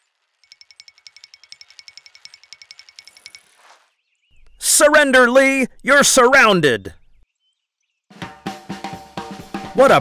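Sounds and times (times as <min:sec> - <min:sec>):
bicycle freewheel ticking: 0:00.0 - 0:03.6.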